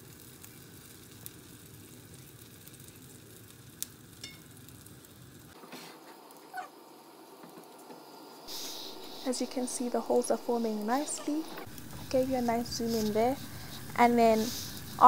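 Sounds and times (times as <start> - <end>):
batter sizzling in pan: 0.0 - 15.0.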